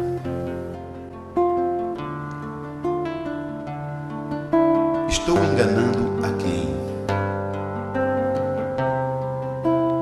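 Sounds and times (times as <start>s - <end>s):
acoustic guitar chords ringing: 0.0s - 10.0s.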